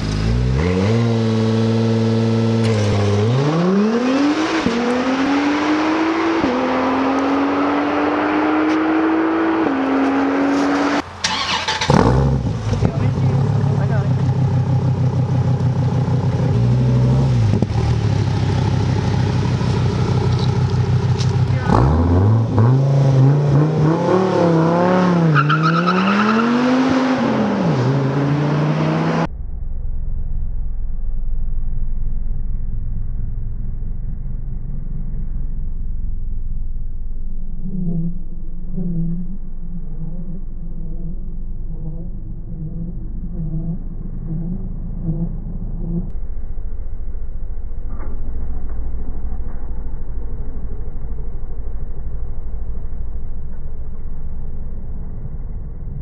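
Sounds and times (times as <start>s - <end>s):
sports car accelerating through upshifts: 0.0s - 12.9s, 20.2s - 29.3s
sports car engine revving: 0.0s - 29.3s
low engine rumble: 10.5s - 22.8s, 29.2s - 56.0s.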